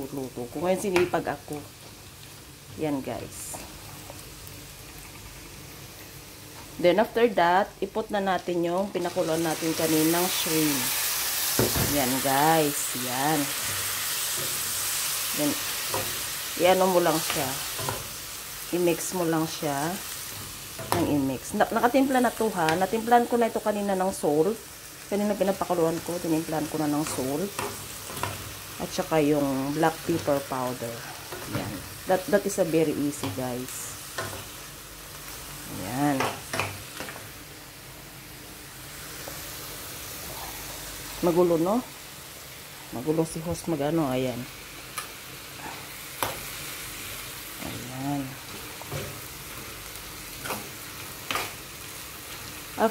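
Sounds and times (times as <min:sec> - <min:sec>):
shrimp sizzling in a pan: 0:00.0 - 0:52.9.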